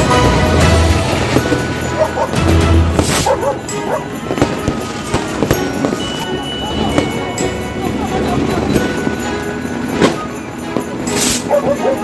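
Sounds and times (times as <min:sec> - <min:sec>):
fireworks bangs and crackles: 0:00.0 - 0:11.6
music: 0:00.0 - 0:12.0
firework hissing burst: 0:02.9 - 0:03.3.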